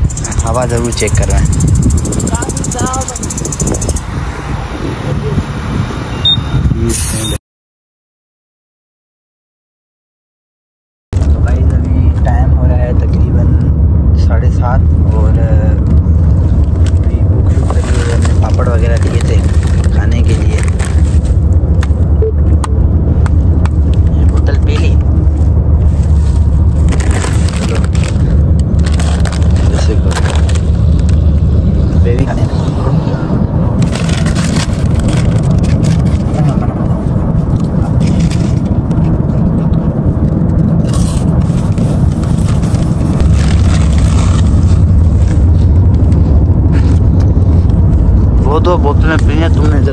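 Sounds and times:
car road and engine rumble: 0.0s - 7.4s, 11.2s - 49.9s
crisp packet crinkling: 17.8s - 21.4s, 26.7s - 31.0s.

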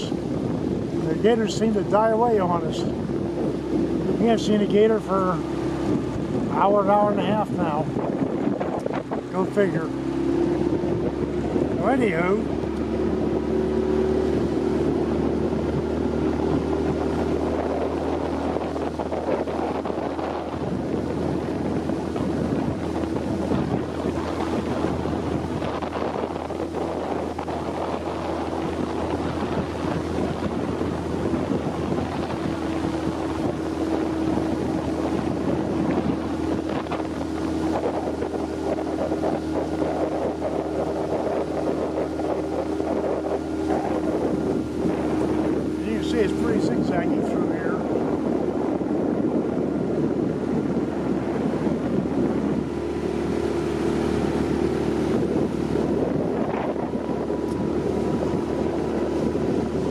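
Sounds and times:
boat motor running: 0.0s - 59.9s
water rushing past hull: 0.0s - 59.9s
wind on microphone: 0.0s - 59.9s.

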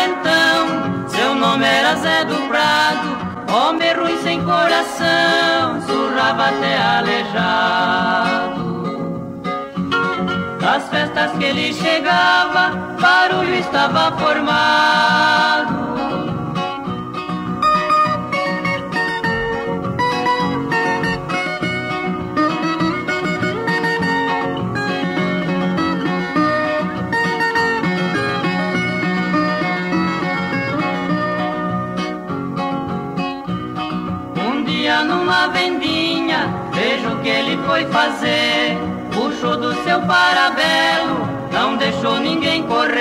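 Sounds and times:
plucked guitars: 0.0s - 43.0s.

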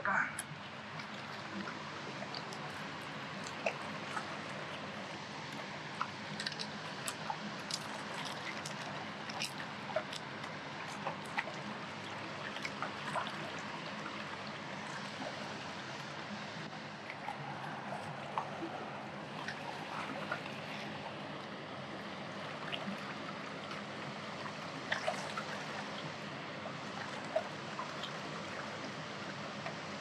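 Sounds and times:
water drips: 0.1s - 16.1s
river water lapping on rocks: 0.4s - 30.0s.

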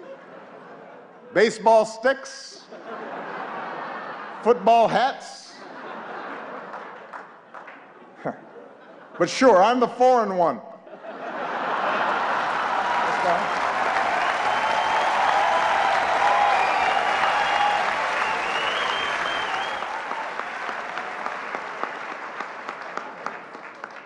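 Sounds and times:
audience laughing: 0.0s - 1.6s, 2.5s - 9.8s, 10.8s - 14.6s
audience applauding: 6.4s - 8.0s, 11.7s - 24.0s.

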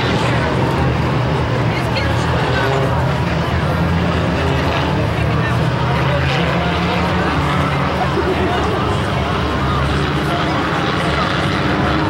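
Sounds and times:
people talking: 0.0s - 12.0s
race car engines droning: 0.0s - 12.0s.

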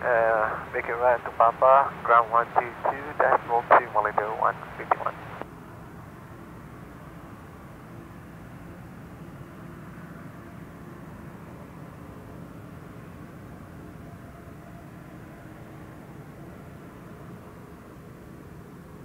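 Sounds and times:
jet engines idling: 0.0s - 19.0s.

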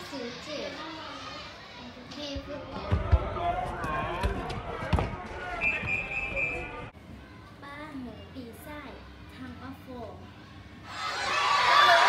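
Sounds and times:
children chattering: 0.0s - 2.9s.

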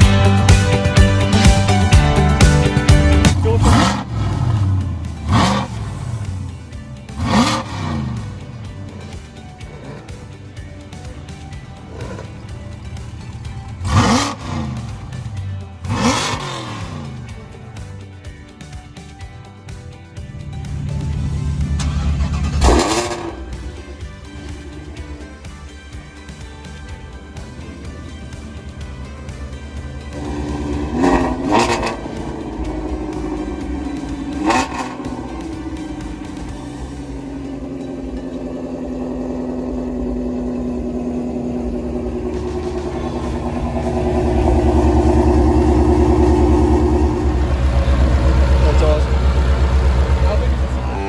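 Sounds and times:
background music: 0.0s - 51.0s
car engine revving: 0.0s - 51.0s.

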